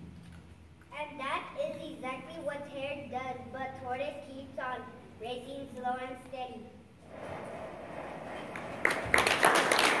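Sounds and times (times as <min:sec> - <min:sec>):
audience applause: 0:08.4 - 0:10.0.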